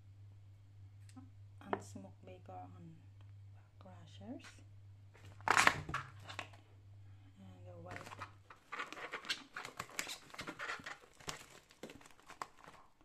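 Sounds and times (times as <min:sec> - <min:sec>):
cling film crinkling: 0:05.2 - 0:06.6, 0:07.9 - 0:13.0.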